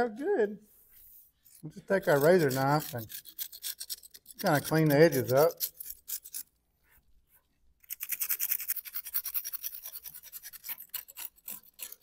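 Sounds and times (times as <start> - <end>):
knife blade scraping concrete: 1.4 - 6.6, 7.8 - 12.0.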